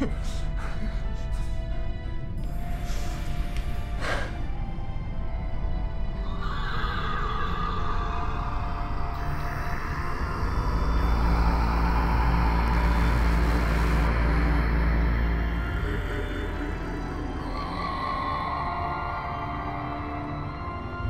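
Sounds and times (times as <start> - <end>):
deep drone: 0.0 - 21.0
harsh wailing high texture: 6.4 - 19.2.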